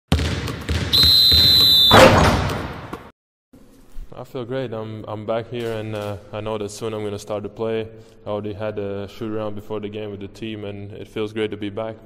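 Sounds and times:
shrill whistle blast: 0:00.9 - 0:02.2
loud ringing slam: 0:01.9 - 0:02.9.

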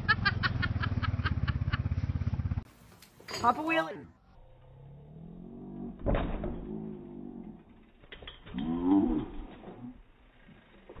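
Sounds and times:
bicycle crashing onto wooden boards: 0:06.0 - 0:06.9.

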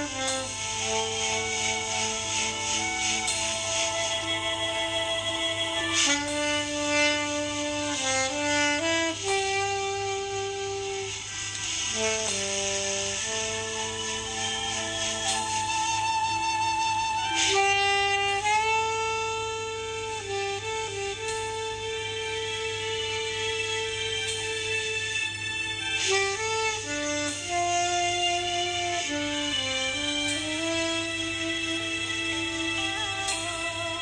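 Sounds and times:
saxophone slow melody: 0:00.0 - 0:34.0.

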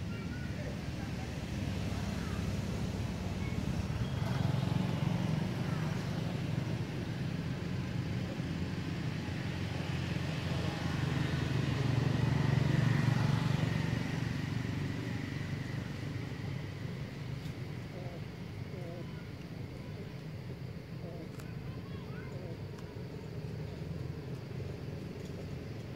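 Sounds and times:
low motor rumble: 0:00.0 - 0:25.9.

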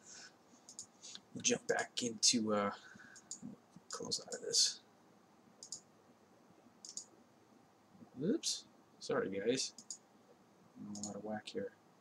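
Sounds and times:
computer mouse double click: 0:05.6 - 0:05.8, 0:06.8 - 0:07.1, 0:09.8 - 0:10.0.

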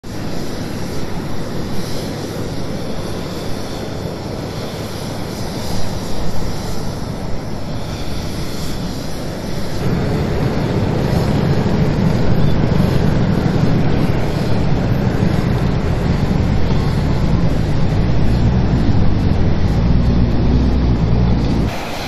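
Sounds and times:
wind noise on microphone: 0:00.0 - 0:22.0
engines rumbling: 0:00.1 - 0:22.0.

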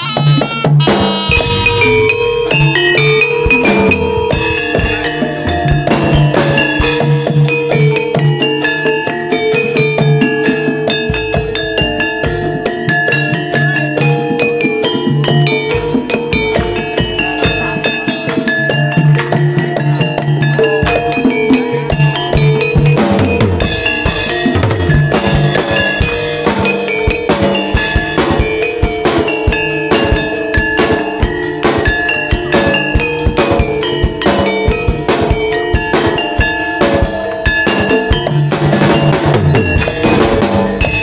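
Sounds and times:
metallophones playing busy melody: 0:00.0 - 0:41.0
steady drum beat: 0:00.0 - 0:41.0.

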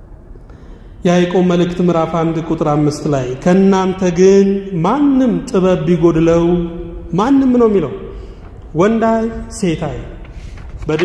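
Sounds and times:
man preaching in chant-like voice: 0:01.0 - 0:11.0.

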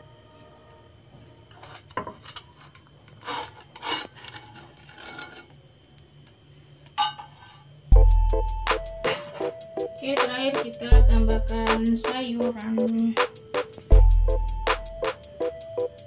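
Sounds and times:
spatula scraping frying pan: 0:01.5 - 0:05.6.

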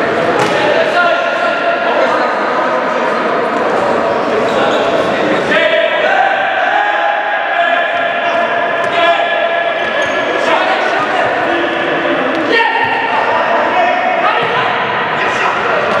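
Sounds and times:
people shouting in a hall: 0:00.0 - 0:16.0.

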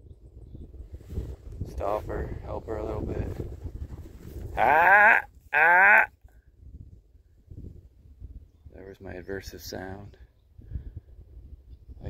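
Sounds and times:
man shouting: 0:04.6 - 0:06.1.

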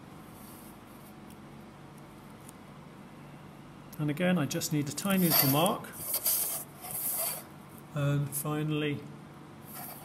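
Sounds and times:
pencil scratching on paper: 0:05.1 - 0:07.5, 0:09.7 - 0:10.0.

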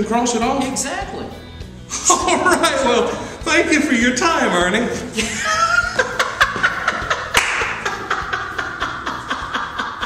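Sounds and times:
laughter: 0:01.9 - 0:03.1, 0:05.2 - 0:10.0
sharp hand claps: 0:07.3 - 0:08.0.

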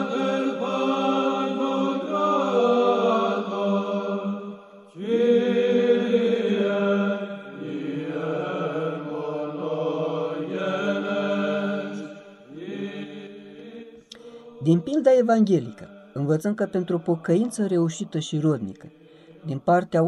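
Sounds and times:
slow sung chant: 0:00.0 - 0:20.0.

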